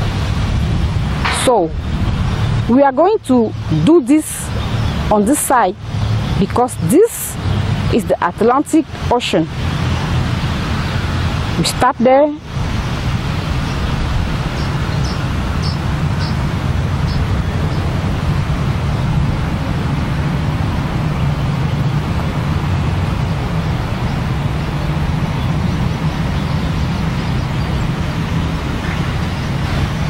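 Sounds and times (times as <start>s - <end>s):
steady loud rushing noise: 0.0s - 30.0s.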